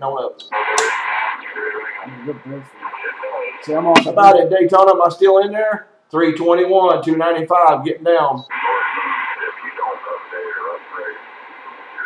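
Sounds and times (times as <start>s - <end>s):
faint garbled radio voice: 0.0s - 4.6s, 8.4s - 12.0s
radio static hiss: 0.4s - 4.7s, 8.4s - 12.0s.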